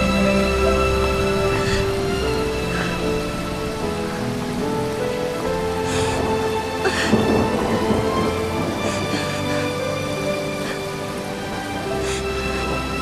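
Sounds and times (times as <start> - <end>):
soft background music: 0.0 - 13.0
steady rain falling: 0.0 - 13.0.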